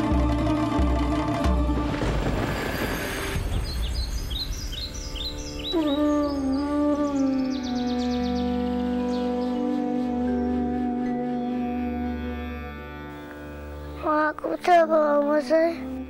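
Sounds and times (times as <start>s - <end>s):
swelling wash of sound: 0.6s - 5.7s
birds chirping: 2.0s - 9.9s
melody of gliding held notes: 5.4s - 16.0s.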